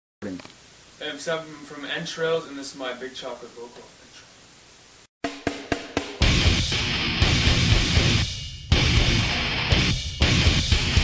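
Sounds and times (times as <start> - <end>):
sharp drum hits: 5.2 - 10.6
heavy metal backing track: 5.4 - 11.0.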